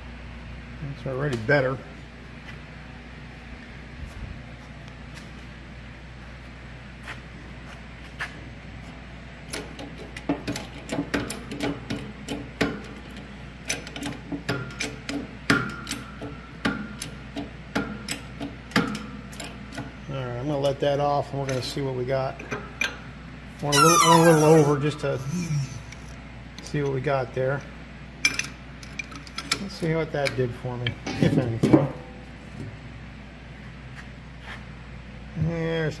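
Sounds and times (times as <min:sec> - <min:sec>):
sharp clicks and knocks: 0:09.5 - 0:19.9
brief squeak: 0:23.7 - 0:24.8.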